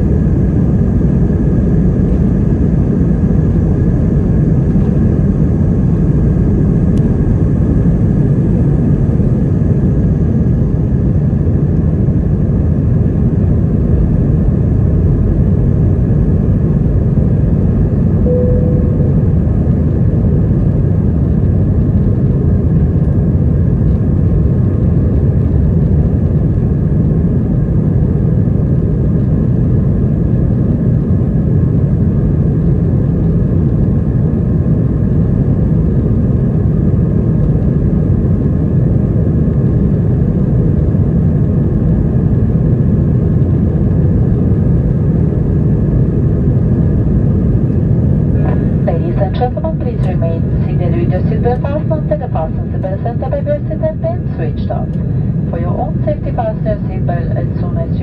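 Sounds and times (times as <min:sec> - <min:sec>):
aircraft engine noise in cabin: 0:00.0 - 0:58.0.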